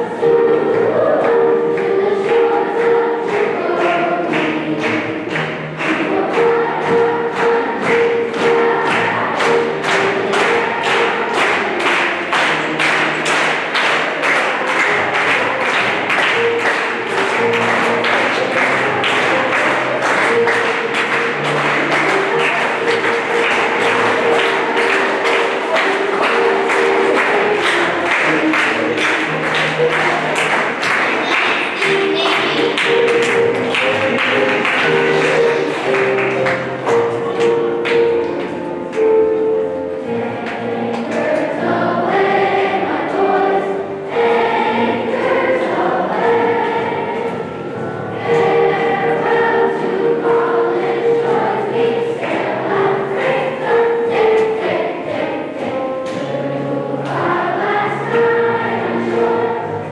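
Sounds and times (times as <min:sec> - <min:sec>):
children's choir singing: 0:00.0 - 0:59.9
sharp rhythmic claps: 0:01.8 - 0:39.3.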